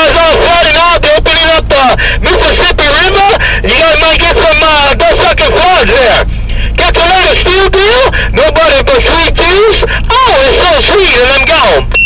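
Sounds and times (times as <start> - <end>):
man's voice over radio: 0.0 - 12.0
steady low hum: 0.0 - 12.0.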